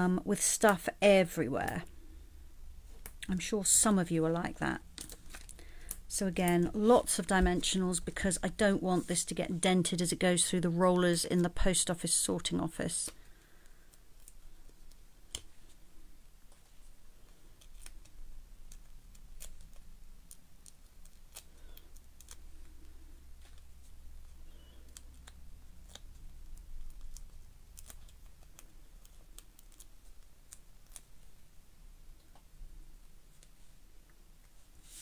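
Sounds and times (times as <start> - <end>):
paper crackles: 4.9 - 9.4.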